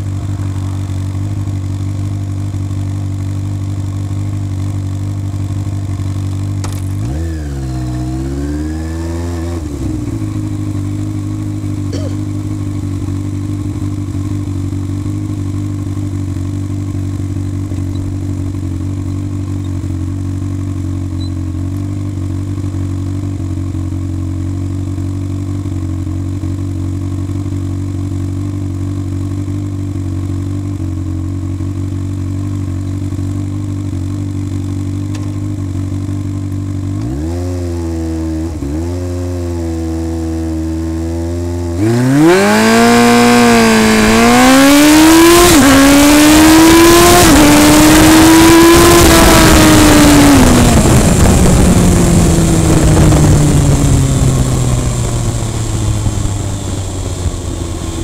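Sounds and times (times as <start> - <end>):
motorcycle engine revving and idling: 0.0 - 58.0.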